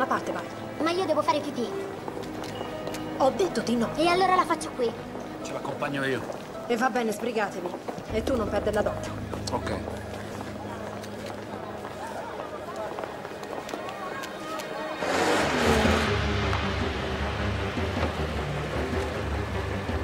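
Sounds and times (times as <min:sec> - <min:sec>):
car driving up: 0:15.0 - 0:20.0.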